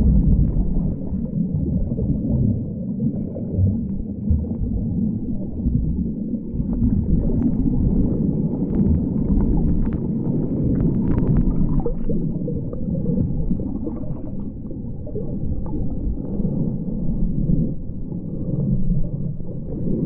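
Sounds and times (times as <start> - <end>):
underwater water rumble: 0.0 - 20.0.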